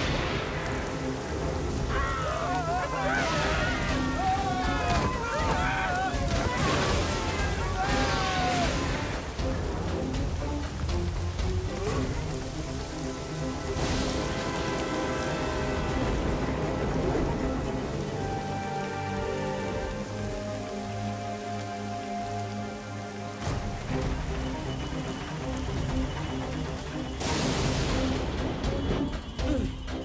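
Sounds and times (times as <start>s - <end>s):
background music: 0.0s - 30.0s
rain falling: 0.0s - 30.0s.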